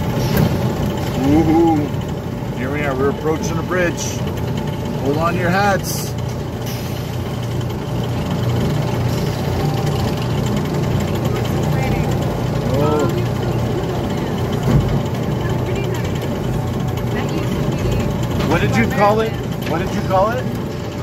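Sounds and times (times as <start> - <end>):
ride car humming on track: 0.0 - 21.0.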